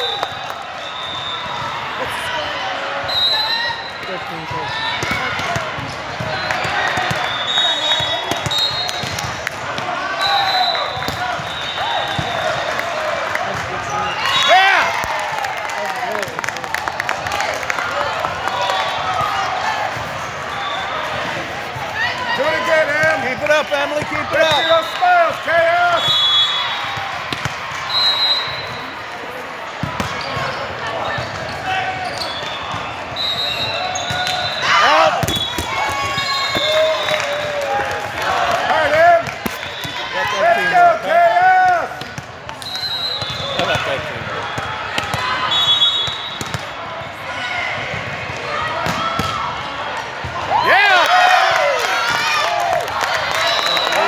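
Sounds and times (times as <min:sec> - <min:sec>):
crowd cheering: 0:00.0 - 0:54.0
players and spectators shouting: 0:00.0 - 0:54.0
volleyball hits and bounces: 0:04.4 - 0:10.0, 0:10.9 - 0:13.8, 0:26.8 - 0:27.9, 0:29.7 - 0:34.4, 0:35.0 - 0:37.0, 0:41.6 - 0:45.4, 0:46.1 - 0:50.5.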